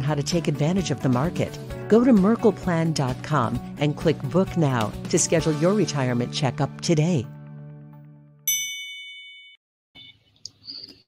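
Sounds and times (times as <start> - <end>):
bright ding: 8.5 - 10.2.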